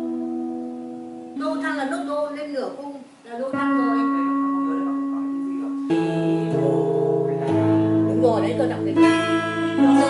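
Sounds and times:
electric steel guitar notes: 0.0 - 2.5, 3.4 - 10.0.

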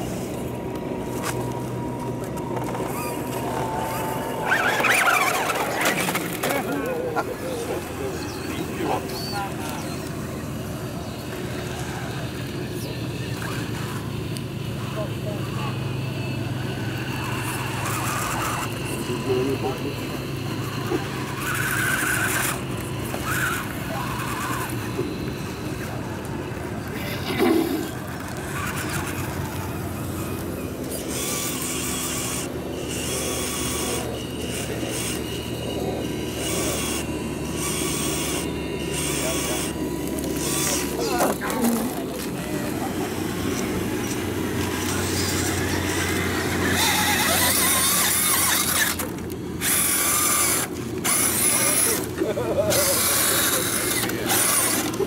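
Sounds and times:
rc truck motors whining: 0.0 - 55.0
steady low hum: 0.0 - 55.0.

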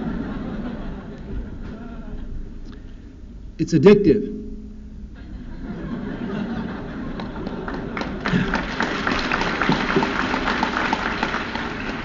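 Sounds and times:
audience laughing: 0.0 - 2.4, 5.1 - 9.8
audience clapping: 7.1 - 12.0.

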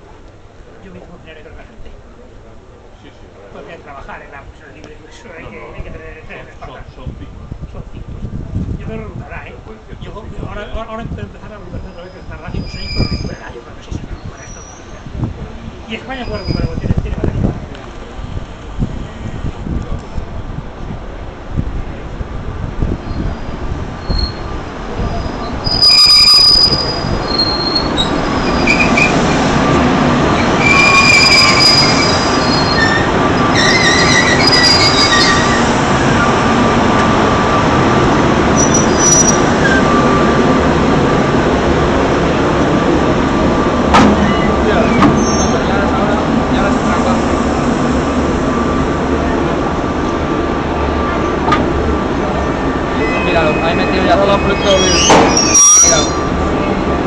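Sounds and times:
electric locomotive rumble and hum: 5.7 - 57.0
high wheel squeal: 11.8 - 13.5, 14.1 - 15.0, 16.2 - 16.8, 23.0 - 36.4, 38.6 - 40.4, 44.2 - 45.8, 52.9 - 56.5.

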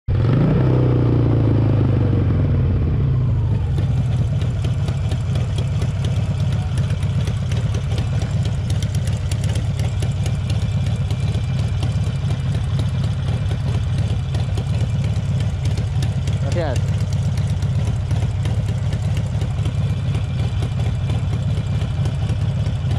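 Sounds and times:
motorcycle engine slowing then idling: 0.1 - 22.9.

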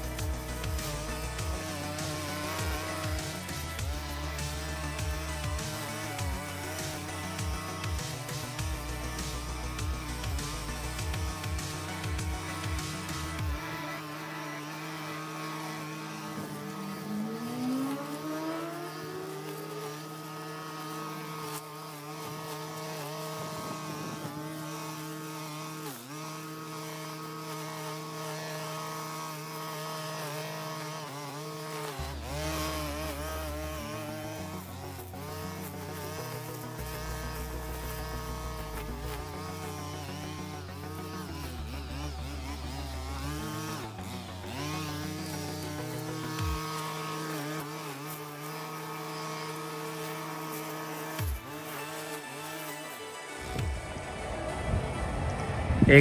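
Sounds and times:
music with stepping bass line: 0.0 - 14.0, 32.0 - 47.0, 51.2 - 51.6, 53.4 - 56.0
string trimmer engine cutting grass: 0.0 - 56.0.

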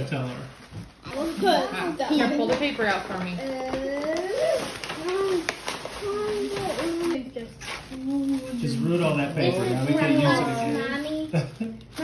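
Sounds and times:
tissue paper rustling: 0.0 - 12.0.

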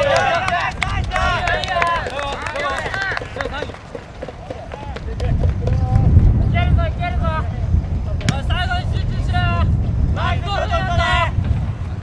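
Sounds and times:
players shouting: 0.0 - 5.3.

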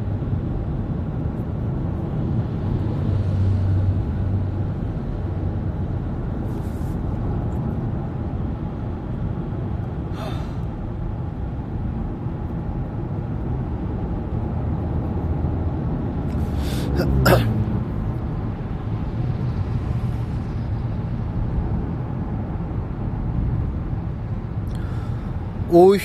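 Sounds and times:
low rumbling background noise: 0.0 - 26.0
person's sharp vocal burst: 16.6 - 17.5.

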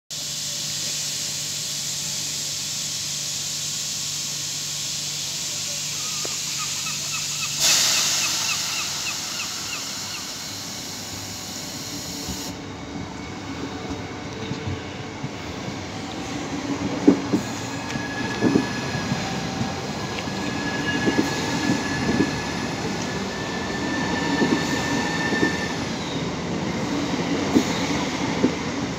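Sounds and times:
train air hiss: 0.1 - 28.9
train pulling away rumble: 0.1 - 28.9.

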